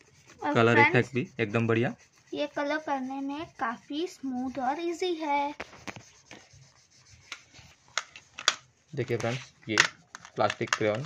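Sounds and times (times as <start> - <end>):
crayon rubbing on paper: 0.0 - 10.2.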